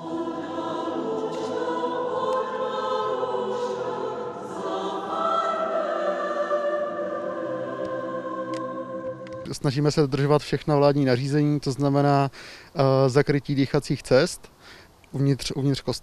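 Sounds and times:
mixed choir singing: 0:00.0 - 0:10.2.

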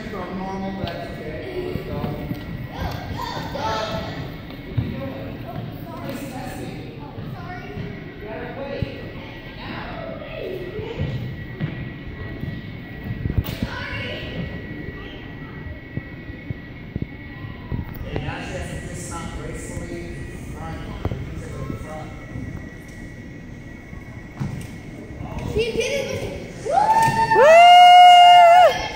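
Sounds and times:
children chattering with echo: 0:00.0 - 0:26.7, 0:28.5 - 0:28.9.

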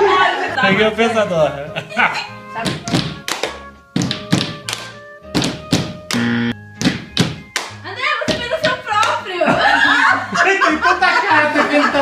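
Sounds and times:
sustained musical notes: 0:00.2 - 0:06.8
hands clapping: 0:02.6 - 0:09.2
hands slapping a tabletop: 0:02.6 - 0:09.2.

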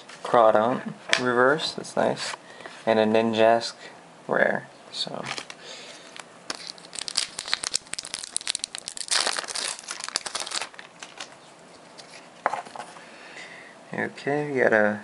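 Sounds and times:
foil wrapper crinkling and tearing: 0:06.5 - 0:12.1.

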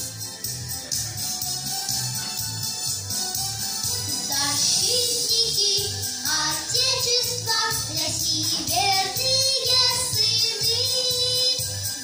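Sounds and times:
pop backing music with beat: 0:00.0 - 0:12.0.

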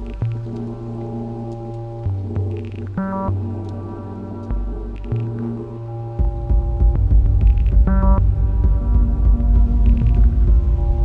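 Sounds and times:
deep throbbing bass: 0:00.0 - 0:11.0
sustained synthesizer drone: 0:00.0 - 0:11.0.

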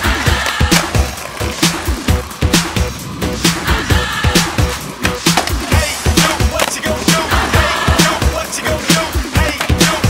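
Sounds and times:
music with steady beat: 0:00.0 - 0:10.0
skateboard rolling and grinding: 0:00.0 - 0:10.0.

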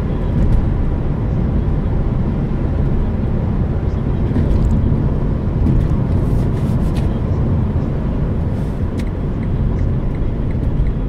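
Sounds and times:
car cabin road and engine rumble: 0:00.0 - 0:11.0.

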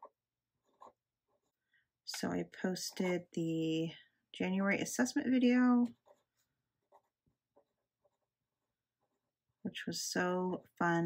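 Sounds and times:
pen scratching on paper: 0:00.0 - 0:01.5, 0:05.9 - 0:09.5.

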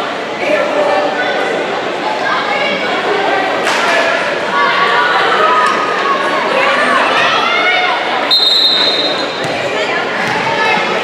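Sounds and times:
referee's whistle: 0:08.3 - 0:09.4.

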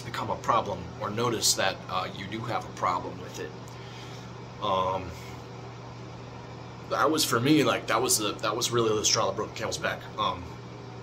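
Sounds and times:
low background hum: 0:00.0 - 0:11.0.

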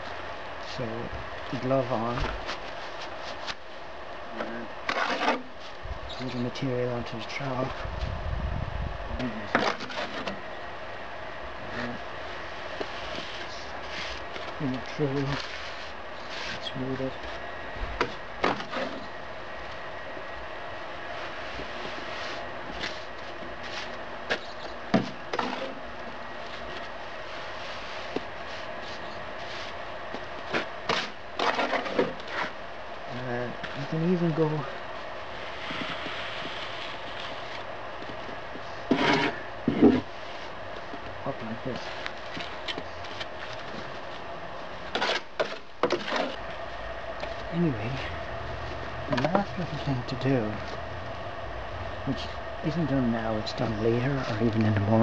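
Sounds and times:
steady background hum: 0:00.0 - 0:55.0
trowel scraping cement mortar: 0:04.9 - 0:05.5, 0:38.9 - 0:39.4.

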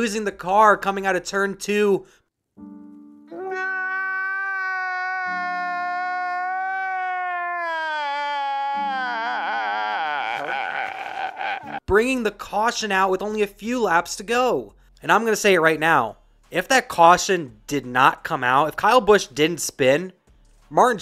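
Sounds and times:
man wailing and sobbing: 0:03.3 - 0:11.9.

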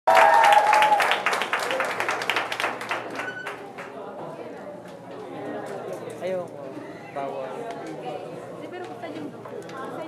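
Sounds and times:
audience applauding: 0:00.1 - 0:04.0.

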